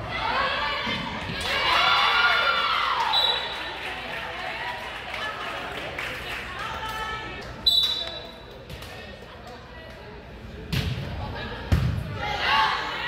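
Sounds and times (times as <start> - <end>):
voices of players and spectators: 0.0 - 13.0.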